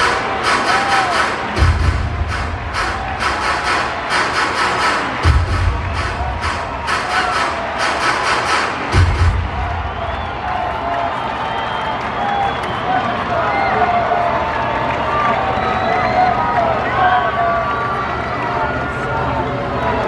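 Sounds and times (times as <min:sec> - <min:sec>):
people shouting: 0:00.0 - 0:11.0
rapid clapping beat: 0:00.0 - 0:13.3
crowd cheering: 0:00.0 - 0:20.0
loud stadium music: 0:00.0 - 0:20.0
deep bass thump: 0:01.6 - 0:03.4, 0:05.2 - 0:06.8, 0:08.9 - 0:10.0.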